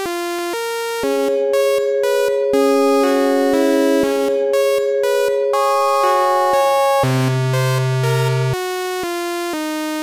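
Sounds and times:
steady held synth tone: 1.0s - 8.6s
synthesizer chords: 1.0s - 8.6s.

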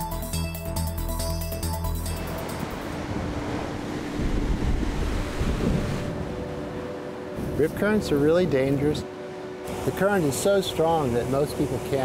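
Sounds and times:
ocean surf breaking: 2.1s - 12.0s
wind buffeting microphone: 3.0s - 9.0s.

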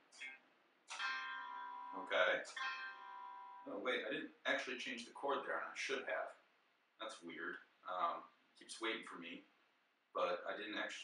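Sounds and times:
electronic guitar chord strummed: 0.9s - 3.8s.

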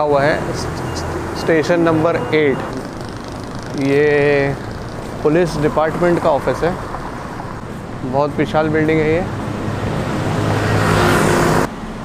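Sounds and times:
vehicle passing by: 0.2s - 12.0s.

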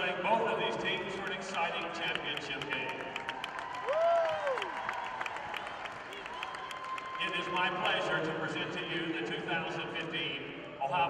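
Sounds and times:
crowd applause: 1.6s - 8.0s.

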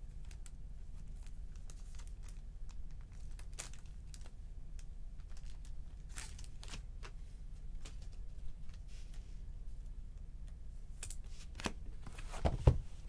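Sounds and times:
low steady hum: 0.0s - 13.0s
foil wrappers crinkling: 0.2s - 7.2s.

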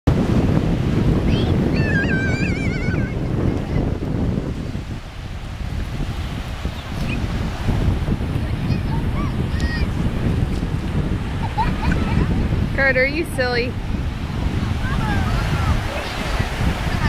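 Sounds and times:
small waves washing in: 0.1s - 17.0s
wind buffeting microphone: 0.1s - 17.0s.

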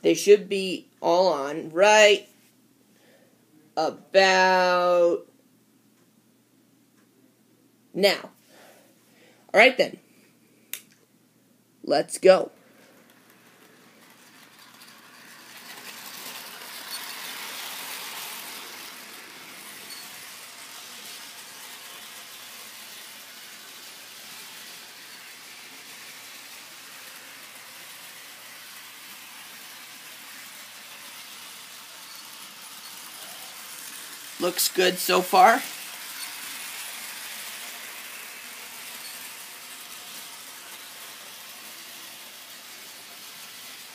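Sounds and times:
model train running on track: 12.9s - 43.9s.

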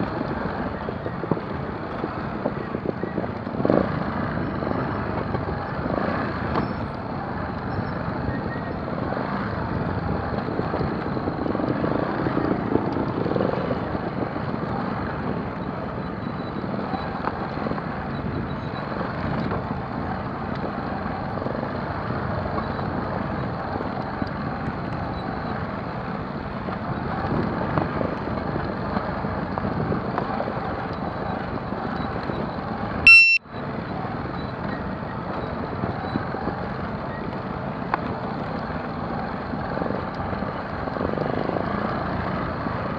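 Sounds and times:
motorcycle engine rumble: 0.0s - 42.9s
wind: 0.0s - 42.9s.

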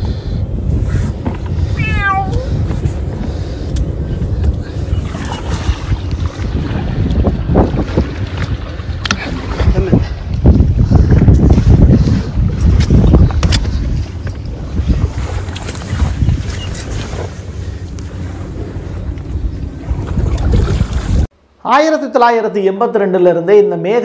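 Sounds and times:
wind buffeting microphone: 0.0s - 21.3s.

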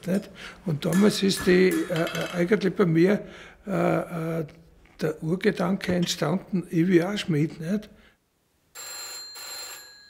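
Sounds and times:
electric bell ringing: 8.8s - 10.0s.

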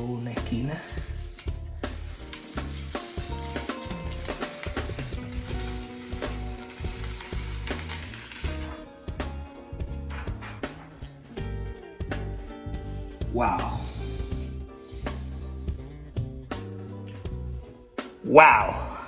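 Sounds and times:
film crackling as peeled: 0.0s - 9.3s
background music with bass line: 0.0s - 19.0s.

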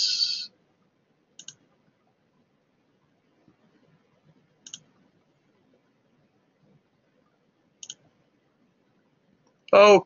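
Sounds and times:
computer mouse double clicks: 1.4s - 1.6s, 4.6s - 4.9s, 7.8s - 8.0s.

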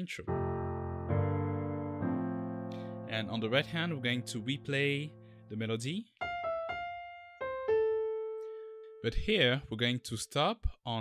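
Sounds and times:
piano melody: 0.2s - 9.3s.

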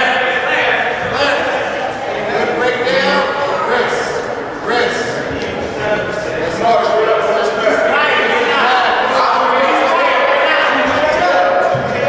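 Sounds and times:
people shouting and calling out: 0.0s - 12.0s.

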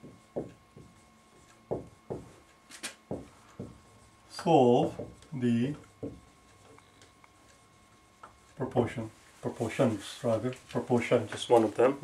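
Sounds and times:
marker writing on whiteboard: 0.0s - 2.4s, 3.1s - 6.8s.

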